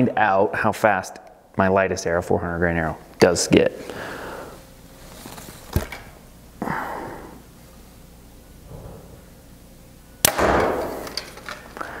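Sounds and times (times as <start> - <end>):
person breathing: 3.8 - 4.7, 6.6 - 7.5, 11.7 - 12.0.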